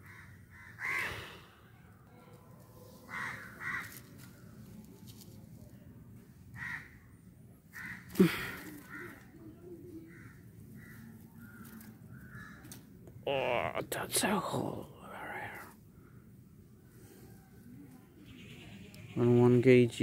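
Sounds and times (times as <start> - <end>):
crows cawing: 0.0 - 1.6, 3.1 - 4.4, 6.5 - 7.1, 7.7 - 9.4, 10.0 - 12.9.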